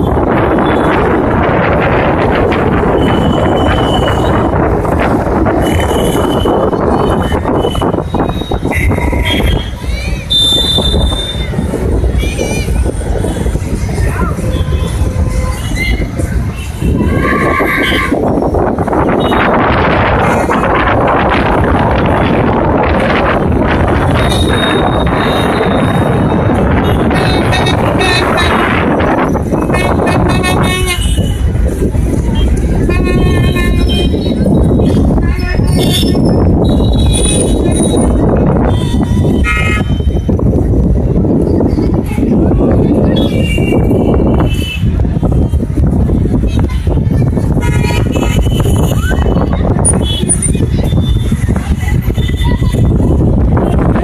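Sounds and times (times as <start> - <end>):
vehicle horns tooting: 0.0 - 11.7, 14.4 - 20.8, 21.5 - 40.4, 43.0 - 45.6, 47.6 - 51.4
outdoor crowd voices: 0.0 - 54.0
wind on microphone: 0.0 - 54.0
held steady horn: 24.0 - 31.5, 32.4 - 34.3.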